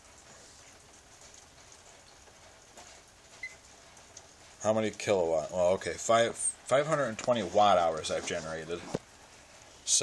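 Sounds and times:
faint background noise: 0.0 - 10.0.

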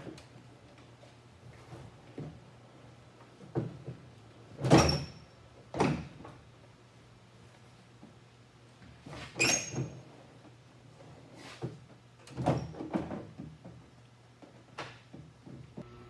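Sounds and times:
low steady hum: 15.8 - 16.0.

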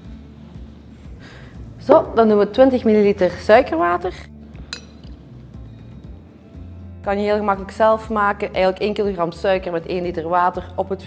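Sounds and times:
soft background music: 0.0 - 11.0
metal jigger clinking glass: 4.7 - 5.2.

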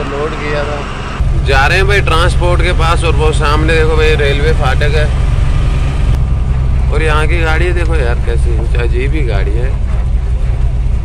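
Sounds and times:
diesel truck engine running: 0.0 - 11.0
road noise: 0.0 - 11.0.

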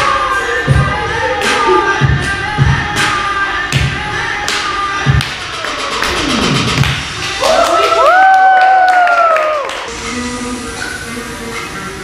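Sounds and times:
dance music with heavy bass beat: 0.0 - 8.0.

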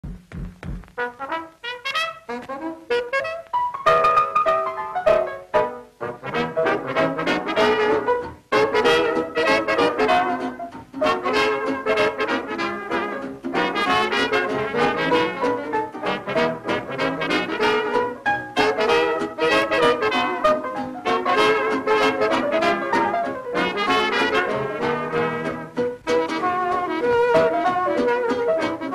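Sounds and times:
drums: 0.0 - 1.4, 4.1 - 28.9
swing band playing: 0.0 - 28.9
piano: 0.6 - 28.9
saxophones: 1.0 - 5.4, 6.0 - 28.9
trombone: 1.0 - 28.9
trumpets: 1.0 - 28.9.

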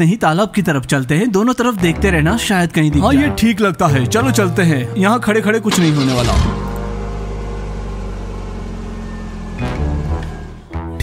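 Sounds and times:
car engine idling: 5.7 - 10.7.

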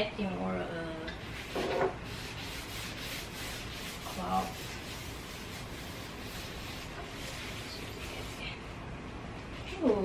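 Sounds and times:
steady low hiss: 0.0 - 10.0
paper napkin wiping wood: 1.2 - 8.7.

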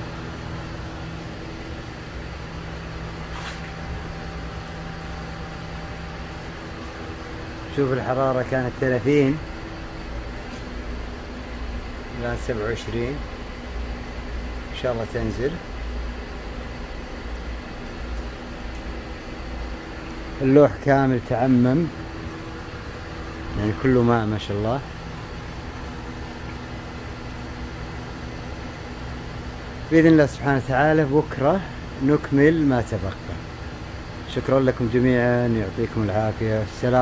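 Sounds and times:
exhaust fan whirring: 0.0 - 37.0.

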